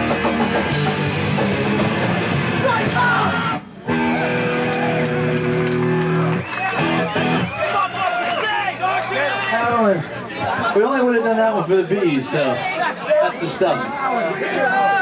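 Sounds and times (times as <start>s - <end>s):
distorted electric guitar chord: 0.0s - 7.5s
punk band playing live: 0.0s - 7.6s
loud shouting voices: 2.6s - 11.3s, 12.1s - 15.0s.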